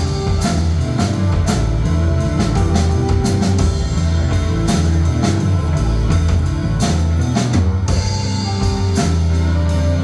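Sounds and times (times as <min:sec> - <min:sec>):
bass notes: 0:00.0 - 0:10.0
drum kit with cymbal hits: 0:00.0 - 0:10.0
electric guitars: 0:00.0 - 0:10.0
keyboard: 0:00.0 - 0:10.0.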